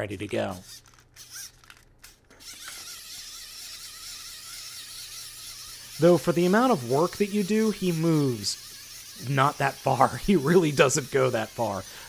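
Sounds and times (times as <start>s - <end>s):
clockwork winding clicks: 0.3s - 12.0s
clockwork motor whirring: 0.5s - 12.0s.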